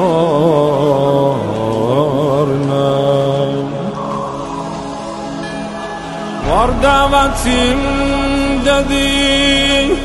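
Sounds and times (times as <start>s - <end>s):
man singing ornamented line: 0.0s - 5.8s, 6.4s - 10.0s
low drone: 0.0s - 10.0s.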